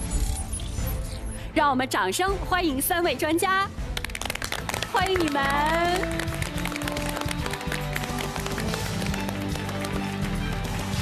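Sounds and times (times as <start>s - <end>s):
background music: 0.0s - 11.0s
audience applause: 4.0s - 11.0s.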